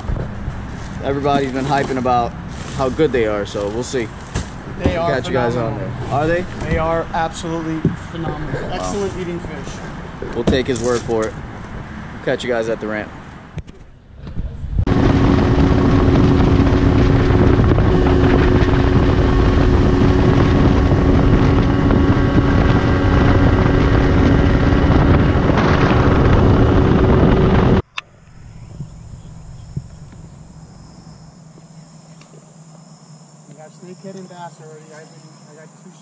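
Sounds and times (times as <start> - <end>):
outboard motor running: 0.0 - 11.0, 14.9 - 36.0
low hum: 13.5 - 36.0
wind on microphone: 13.6 - 31.8
high-pitched insect drone: 27.8 - 36.0.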